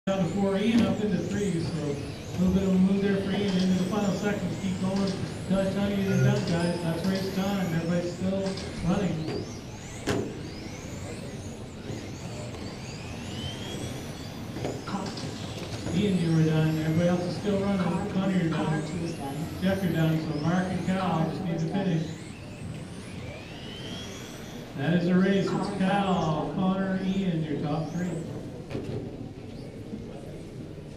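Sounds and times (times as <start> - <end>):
rc car motors whining: 0.1 - 30.9.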